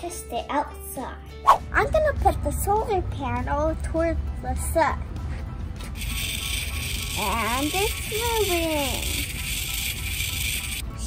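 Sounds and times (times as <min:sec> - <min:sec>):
faint background music: 0:00.0 - 0:11.0
toy car motor whirring: 0:05.8 - 0:10.9.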